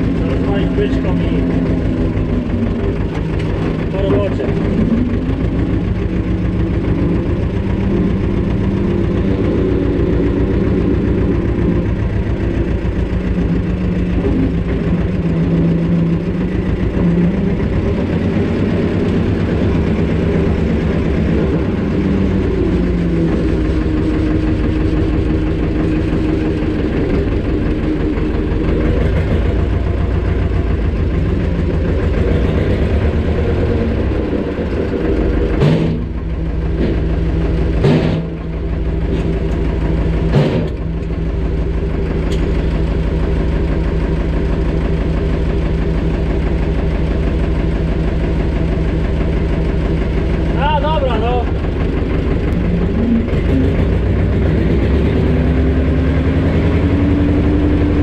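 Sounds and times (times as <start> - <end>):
tractor engine running: 0.0 - 58.0.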